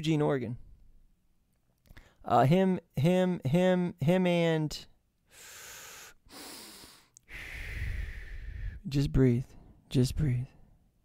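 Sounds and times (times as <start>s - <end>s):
man breathing into microphone: 5.3s - 8.9s.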